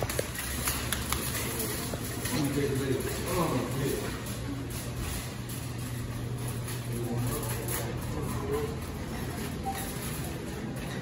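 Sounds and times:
shopping cart rattling on tiles: 0.0 - 11.0
steady low hum: 0.0 - 11.0.

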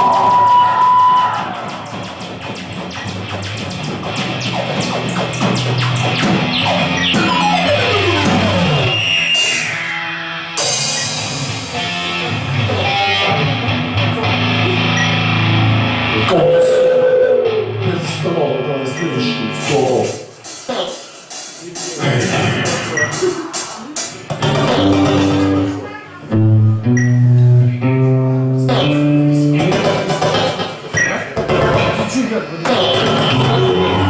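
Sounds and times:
live rock band playing: 0.0 - 17.9, 19.5 - 30.9
guitar notes sliding downward: 0.0 - 19.6, 22.0 - 30.6, 32.7 - 34.0.

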